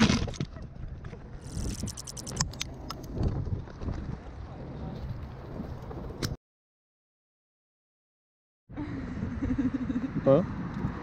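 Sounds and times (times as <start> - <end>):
wind rumble on microphone: 0.1 - 6.4, 8.7 - 11.0.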